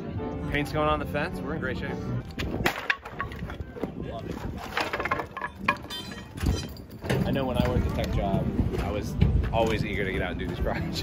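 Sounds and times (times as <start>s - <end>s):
wood cracking and knocking: 2.3s - 8.1s
wooden slats breaking: 2.6s - 3.5s, 4.6s - 7.2s.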